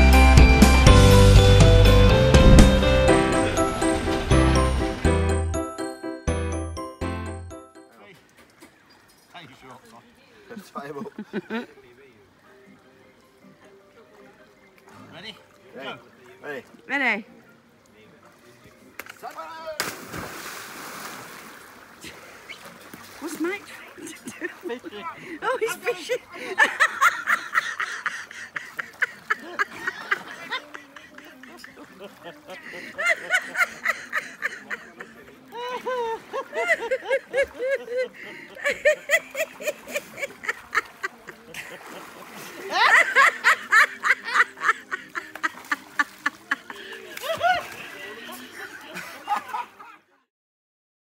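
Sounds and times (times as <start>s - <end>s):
pool water splashing: 0.0s - 50.1s
person diving into pool splash: 2.1s - 5.4s, 19.8s - 23.2s, 41.6s - 43.1s
churning water from swimming: 19.8s - 25.6s, 35.3s - 49.2s
loud cackling laughter: 26.4s - 41.8s, 42.6s - 47.7s.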